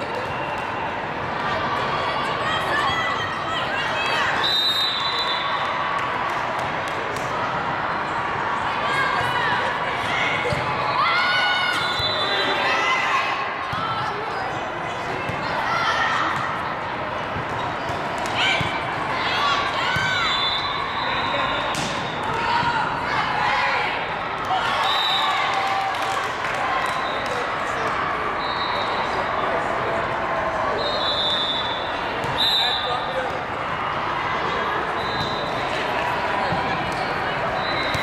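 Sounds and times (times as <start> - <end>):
voices of players and spectators: 0.0 - 38.0.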